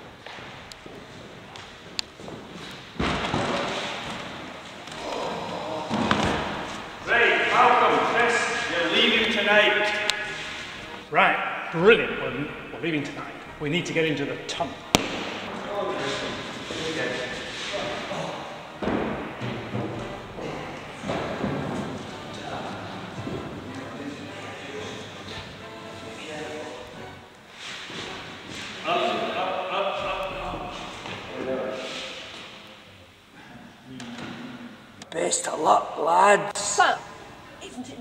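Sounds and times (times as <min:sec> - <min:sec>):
background music: 0:03.8 - 0:31.0
indistinct voices: 0:04.8 - 0:18.7.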